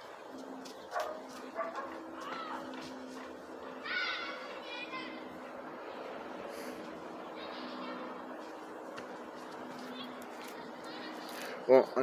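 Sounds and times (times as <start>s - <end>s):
dog barking and yipping: 0.9s - 2.7s.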